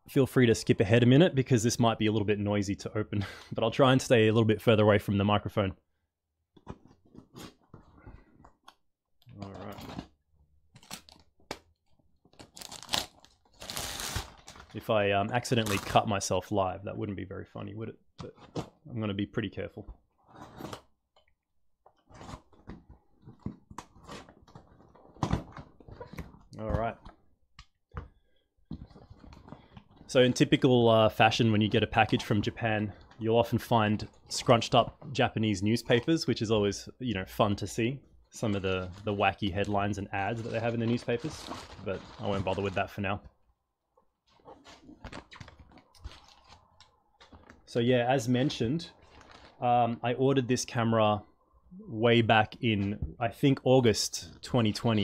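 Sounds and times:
paper and bubble wrap crinkling: 12.3s - 14.8s, 38.4s - 43.2s, 44.3s - 47.7s, 48.4s - 49.6s
cardboard scraping and tearing: 12.4s - 14.6s.

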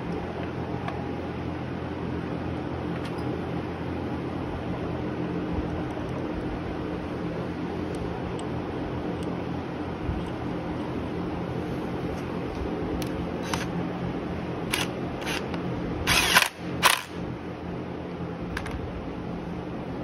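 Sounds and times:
steady low hum: 0.0s - 20.0s
impact wrench bursts: 16.1s - 17.2s.

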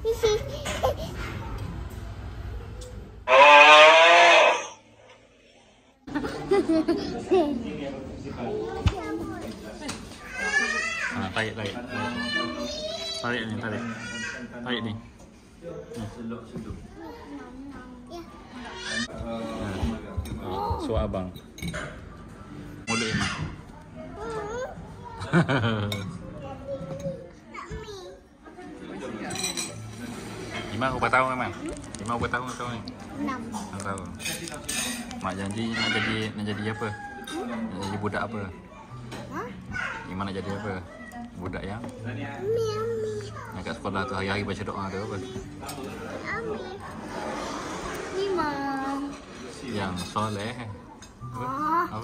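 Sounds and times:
long moo-like call: 3.3s - 4.8s
indistinct talk: 22.3s - 52.0s.

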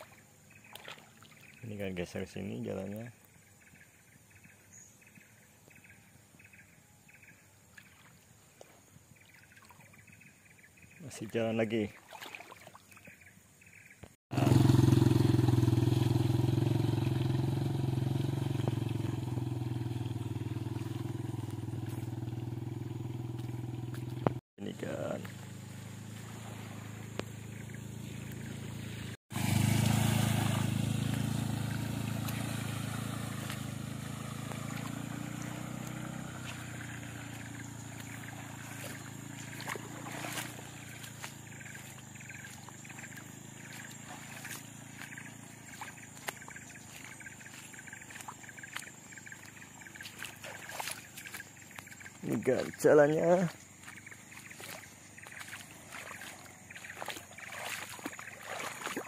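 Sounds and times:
motorcycle engine running: 13.7s - 59.0s.

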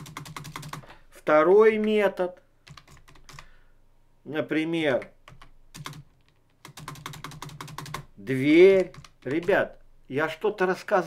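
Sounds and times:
computer keyboard typing: 0.0s - 0.9s, 2.6s - 3.5s, 5.2s - 9.8s
low steady hum: 8.0s - 10.6s.

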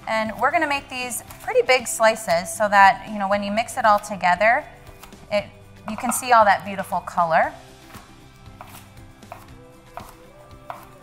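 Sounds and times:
knife slicing cucumber on board: 5.0s - 5.2s, 7.8s - 11.0s.

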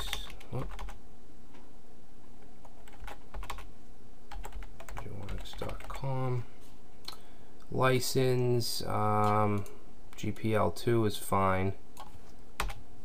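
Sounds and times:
computer keyboard typing: 0.0s - 1.0s, 2.6s - 3.7s, 4.3s - 6.1s, 12.0s - 12.8s
steady low hum: 0.0s - 13.0s.

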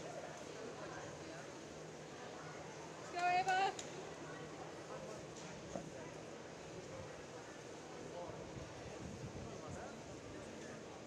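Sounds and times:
indoor hall background noise: 0.0s - 11.0s.

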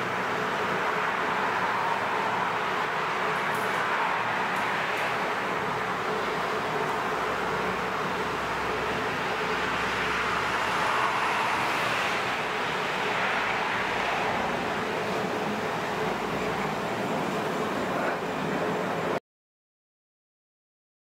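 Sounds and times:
distant traffic rushing: 0.0s - 19.2s.

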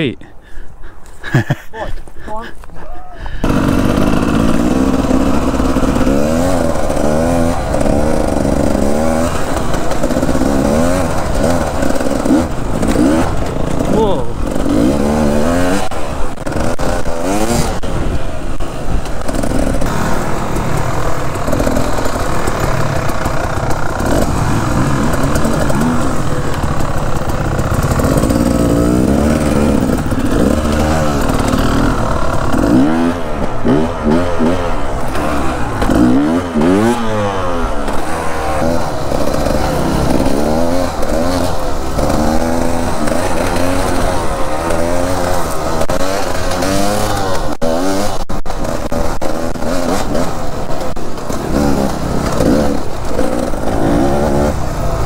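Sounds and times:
dirt bike engine revving: 3.3s - 55.0s.

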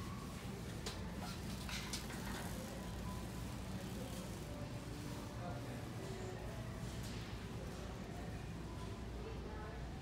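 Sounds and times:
faint background music over speakers: 0.0s - 10.0s.

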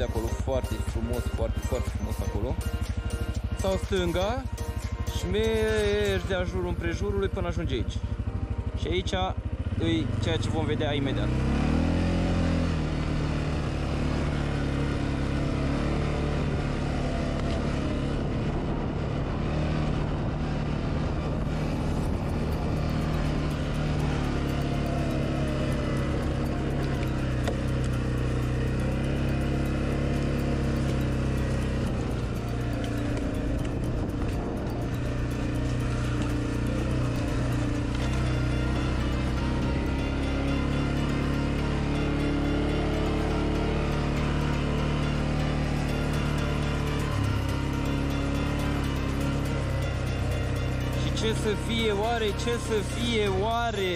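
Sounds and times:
quad bike engine running: 0.0s - 53.9s.

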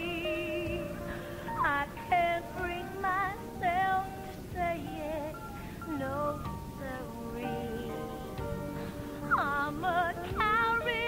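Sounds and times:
instrumental accompaniment: 0.0s - 11.0s
woman singing with vibrato: 0.0s - 11.0s.

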